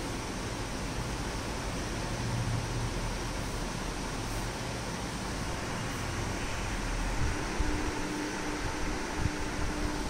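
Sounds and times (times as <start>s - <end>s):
faint steady hum: 0.0s - 10.0s
room fan whirring: 0.0s - 10.0s.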